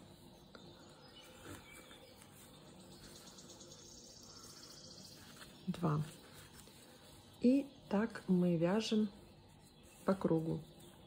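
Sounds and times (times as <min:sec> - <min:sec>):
soft rustles of twine: 0:00.0 - 0:11.0.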